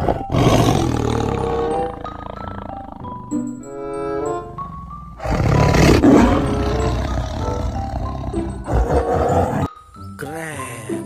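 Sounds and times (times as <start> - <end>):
tiger roaring: 0.0 - 9.7
light background music: 0.0 - 11.0.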